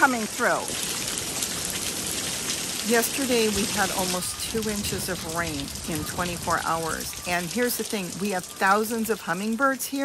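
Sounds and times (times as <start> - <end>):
heavy rain on wooden deck: 0.0 - 10.0.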